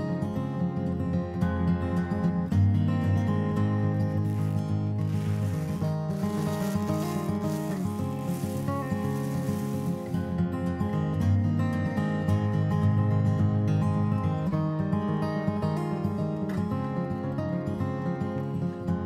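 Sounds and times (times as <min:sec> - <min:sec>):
acoustic guitar music: 0:00.0 - 0:19.0
rustling hiss: 0:04.2 - 0:10.4.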